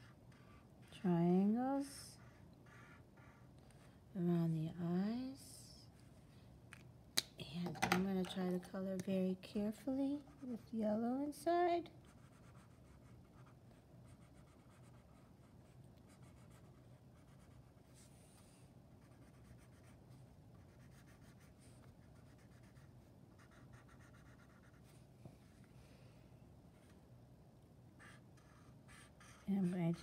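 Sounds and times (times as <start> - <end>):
low steady hum: 0.0 - 30.0
marker scratching on paper: 2.0 - 3.5, 20.6 - 24.8, 28.0 - 30.0.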